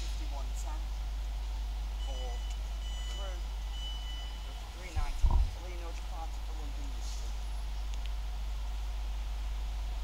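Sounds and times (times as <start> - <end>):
train door warning beeps: 2.0 - 5.5
loud thump: 5.0 - 5.6.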